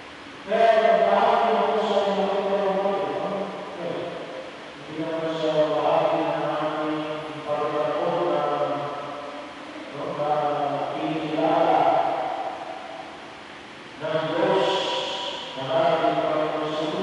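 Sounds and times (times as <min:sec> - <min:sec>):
man chanting into microphone: 0:00.4 - 0:09.2, 0:09.9 - 0:13.0, 0:14.0 - 0:17.0.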